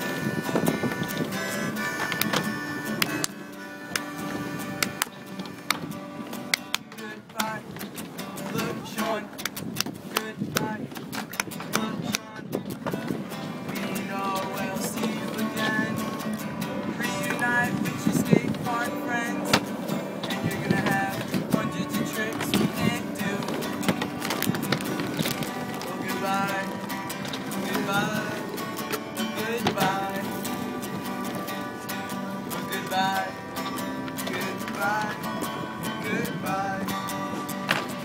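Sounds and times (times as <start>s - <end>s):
acoustic guitar strumming: 0.0s - 38.0s
man singing: 6.6s - 9.4s, 10.0s - 10.9s, 11.6s - 12.6s, 13.4s - 38.0s.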